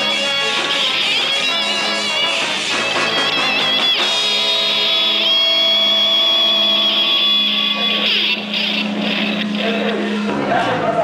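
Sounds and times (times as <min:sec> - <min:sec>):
band chord ringing out: 0:00.0 - 0:10.3
voices: 0:00.0 - 0:11.0.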